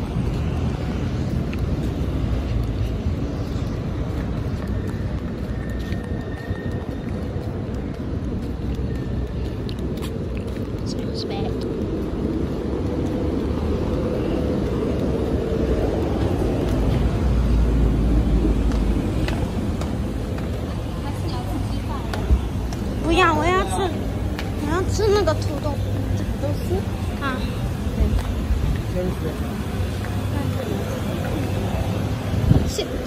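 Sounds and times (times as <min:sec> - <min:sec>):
road traffic rumble: 0:00.0 - 0:33.0.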